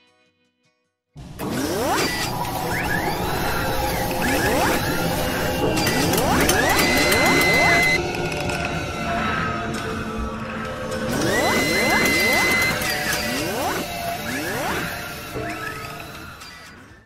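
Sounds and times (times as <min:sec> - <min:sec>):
music: 0:00.0 - 0:17.0
mechanical whirring and clicking: 0:01.4 - 0:08.9, 0:10.6 - 0:17.0
rising sweeps: 0:01.5 - 0:16.4.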